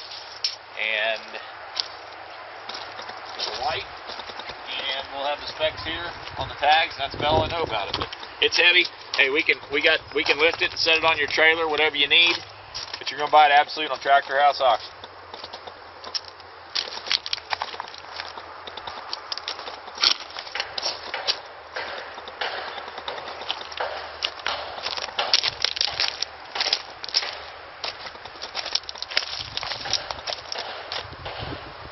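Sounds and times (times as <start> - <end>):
footsteps crunching on gravel: 0.0 - 31.8.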